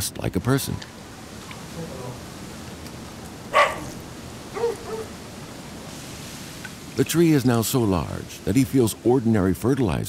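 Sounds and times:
steady background hiss: 0:00.0 - 0:10.0
animal calls: 0:03.4 - 0:05.5.

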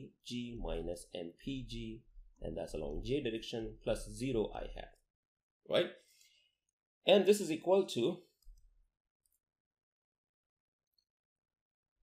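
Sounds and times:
person speaking: 0:00.0 - 0:05.0.

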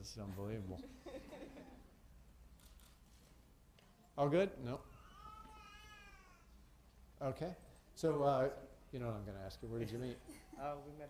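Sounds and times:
small child's high-pitched call: 0:05.0 - 0:06.5.

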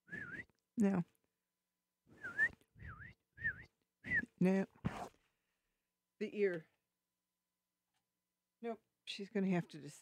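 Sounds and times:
person whistling: 0:00.0 - 0:00.6, 0:02.2 - 0:04.4.

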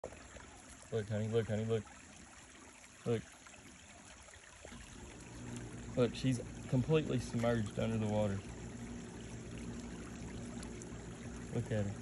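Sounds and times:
creek water trickling: 0:00.0 - 0:12.0.

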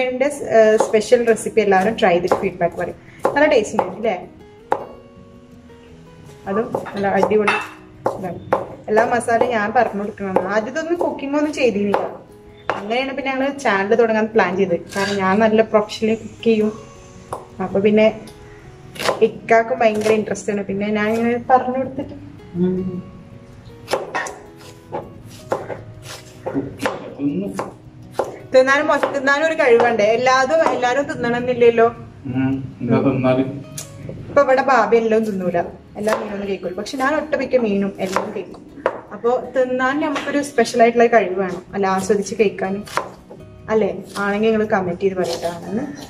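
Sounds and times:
woman talking: 0:00.0 - 0:04.3, 0:06.4 - 0:07.6, 0:08.2 - 0:12.0, 0:12.8 - 0:16.8, 0:28.6 - 0:32.1, 0:34.4 - 0:42.9, 0:43.7 - 0:46.0
soft background music: 0:00.0 - 0:46.0
knife chopping on cutting board: 0:00.6 - 0:04.0, 0:19.0 - 0:19.3, 0:19.9 - 0:20.2, 0:23.9 - 0:30.0, 0:30.6 - 0:30.8, 0:36.0 - 0:36.3, 0:38.0 - 0:39.0, 0:42.8 - 0:43.4, 0:45.2 - 0:46.0.

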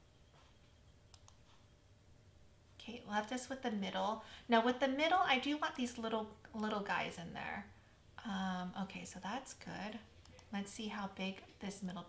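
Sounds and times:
faint computer mouse clicks: 0:01.1 - 0:01.5.

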